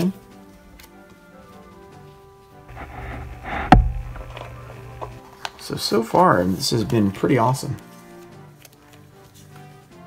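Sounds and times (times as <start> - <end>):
soft background music: 0.0 - 10.0
plastic rustling: 2.7 - 5.2
cards sliding out of plastic sleeves: 2.7 - 5.5.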